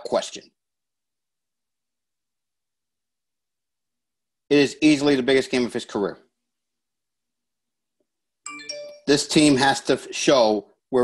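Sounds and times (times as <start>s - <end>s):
two-note chime: 8.5s - 9.4s.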